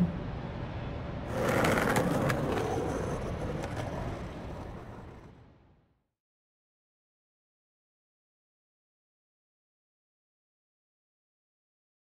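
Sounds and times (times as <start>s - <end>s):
skateboard wheels rolling on pavement: 1.2s - 5.7s.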